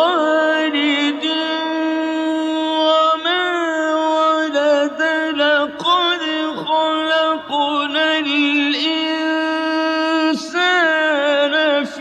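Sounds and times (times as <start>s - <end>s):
person reciting melodically: 0.0s - 12.0s.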